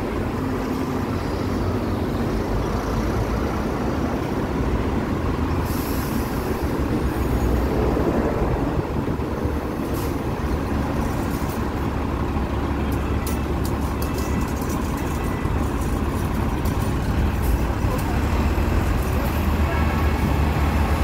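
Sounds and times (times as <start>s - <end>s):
buses running close by: 0.0s - 21.0s
street traffic rumble: 0.0s - 21.0s.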